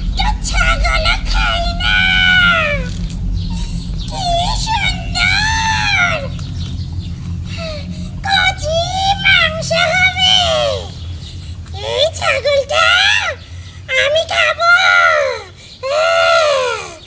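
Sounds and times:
high-pitched rising vocal calls: 0:00.0 - 0:12.0
steady low hum: 0:00.0 - 0:17.0.

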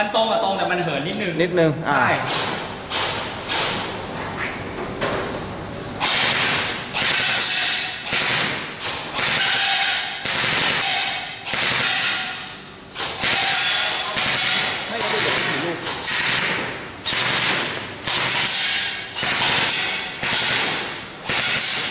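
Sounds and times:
airsoft rifle shots echoing: 0:06.0 - 0:12.4, 0:13.2 - 0:15.6, 0:16.2 - 0:18.6, 0:19.2 - 0:21.9.

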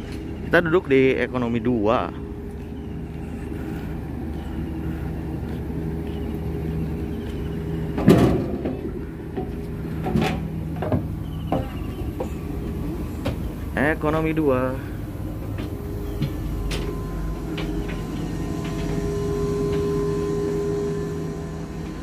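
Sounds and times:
train low hum: 0:00.0 - 0:22.0
knocks and thuds of boarding: 0:08.0 - 0:12.4.

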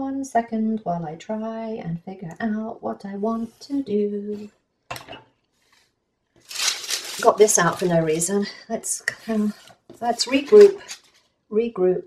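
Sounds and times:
thin paper rustling and crinkling: 0:06.4 - 0:08.4, 0:09.5 - 0:11.2.

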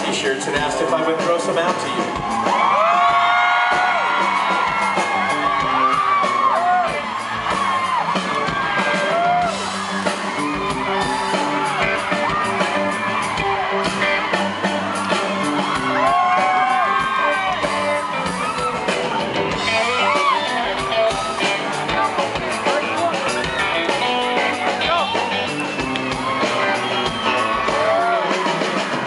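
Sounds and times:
live rock band playing: 0:00.0 - 0:29.0
audience whooping and yelling: 0:01.7 - 0:29.0.

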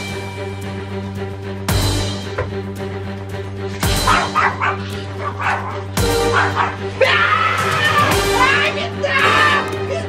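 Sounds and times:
background music: 0:00.0 - 0:10.0
dog barking and yipping: 0:03.9 - 0:07.0.

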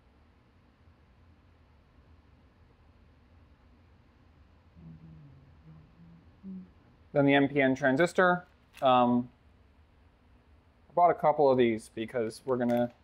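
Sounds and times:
faint low voice: 0:04.8 - 0:06.9.

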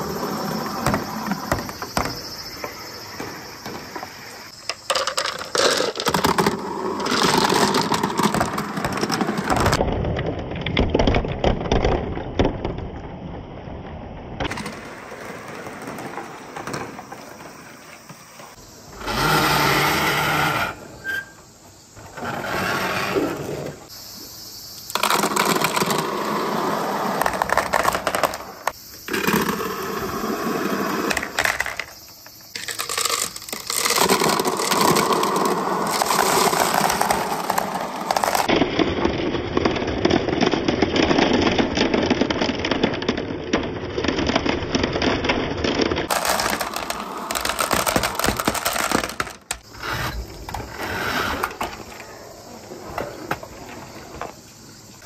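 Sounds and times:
marbles rattling down wooden track: 0:04.7 - 0:09.8, 0:24.9 - 0:29.8, 0:32.5 - 0:38.5, 0:39.6 - 0:51.4.

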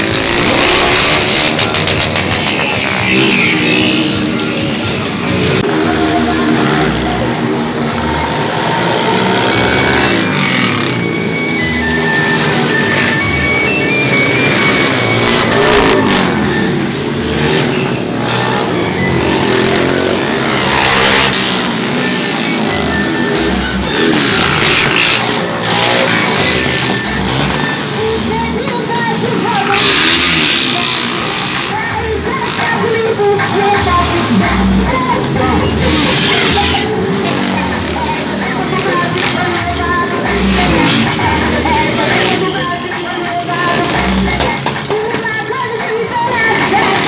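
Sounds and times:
motorcycle engines revving: 0:00.0 - 0:47.0.

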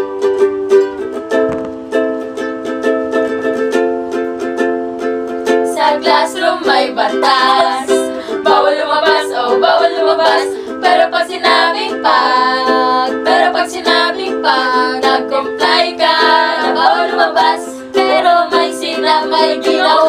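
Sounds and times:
ukulele strumming chords: 0:00.0 - 0:20.0
women singing together: 0:05.7 - 0:20.0.

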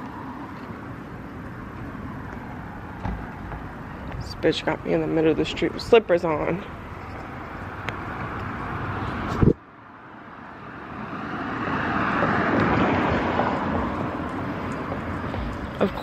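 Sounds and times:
car passing: 0:00.0 - 0:16.0
street traffic noise: 0:00.0 - 0:16.0.

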